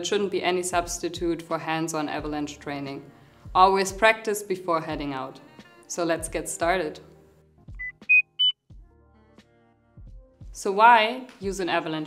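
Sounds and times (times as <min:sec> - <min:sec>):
quiet background music: 0:00.0 - 0:12.0
rising electronic beeps: 0:07.8 - 0:08.6.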